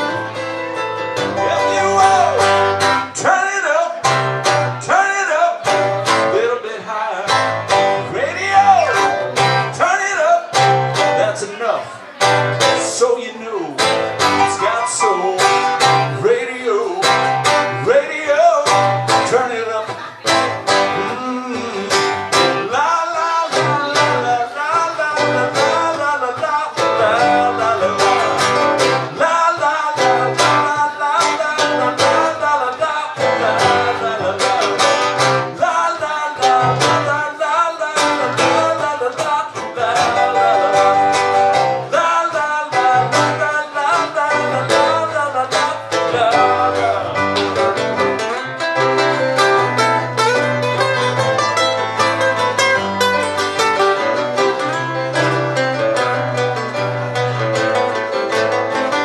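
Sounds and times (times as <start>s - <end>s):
keyboard playing: 0.0s - 12.8s, 13.8s - 59.0s
acoustic guitar strumming: 0.0s - 59.0s
person singing: 1.1s - 59.0s.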